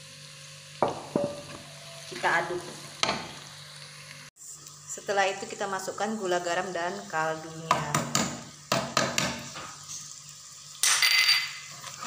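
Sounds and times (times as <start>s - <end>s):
food sizzling in a pan: 0.0s - 12.0s
wooden spatula scraping a pan: 11.7s - 12.0s.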